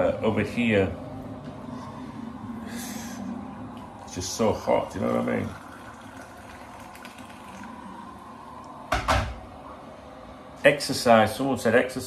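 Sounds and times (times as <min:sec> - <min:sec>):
kettle hissing: 0:02.7 - 0:09.7.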